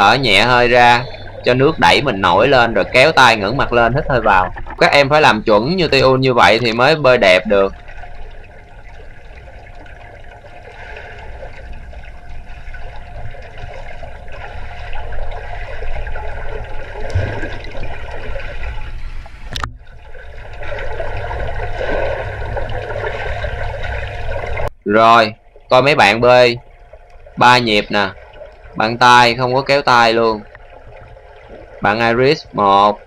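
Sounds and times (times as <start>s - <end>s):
underwater rushing and gurgling: 0.0s - 24.8s, 25.4s - 33.0s.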